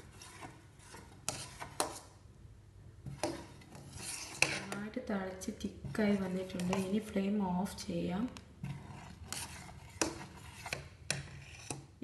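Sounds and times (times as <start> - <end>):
metal spoon scraping saucepan: 0.0 - 2.1, 3.1 - 5.0, 5.8 - 7.2, 8.6 - 12.0.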